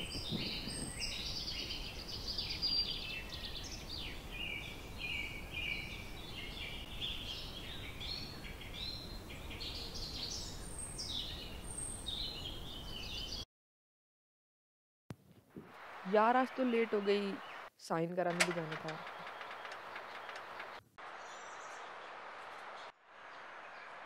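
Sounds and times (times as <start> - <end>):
birds chirping: 0.0 - 13.4, 15.8 - 24.0.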